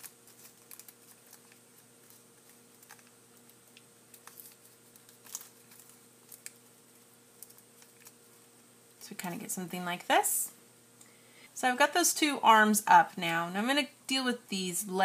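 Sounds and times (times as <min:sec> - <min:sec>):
paper clicks and rustles: 0:00.0 - 0:08.2
faint steady hum: 0:00.0 - 0:15.0.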